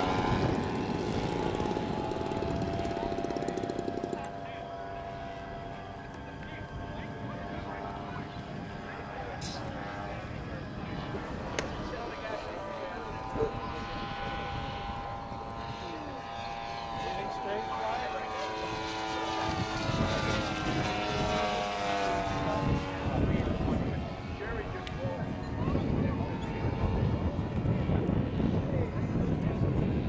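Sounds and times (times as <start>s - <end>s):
model plane engine droning: 0.0s - 30.0s.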